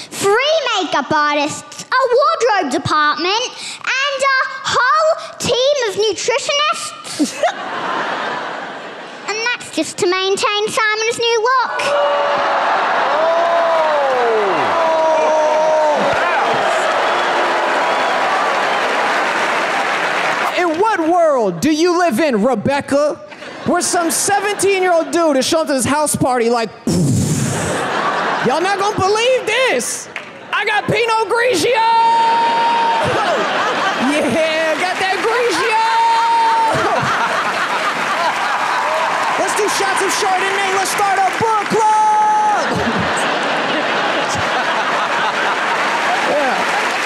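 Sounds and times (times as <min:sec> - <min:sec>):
audience laughing: 0:07.0 - 0:09.4, 0:23.3 - 0:25.9, 0:26.9 - 0:31.8, 0:32.4 - 0:47.0
audience applauding: 0:11.8 - 0:21.1, 0:27.6 - 0:47.0
man shouting into microphone: 0:30.6 - 0:33.4, 0:34.4 - 0:37.0, 0:39.4 - 0:42.7.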